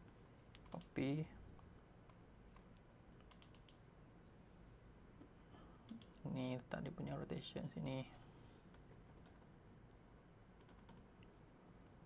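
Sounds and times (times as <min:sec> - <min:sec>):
computer keyboard typing: 0:03.3 - 0:03.8, 0:05.9 - 0:06.3, 0:08.7 - 0:09.5, 0:10.6 - 0:11.1.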